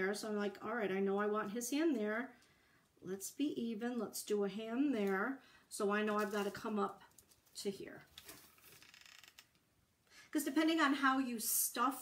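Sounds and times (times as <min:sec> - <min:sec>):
faint clicks and rustling: 0:06.2 - 0:09.7.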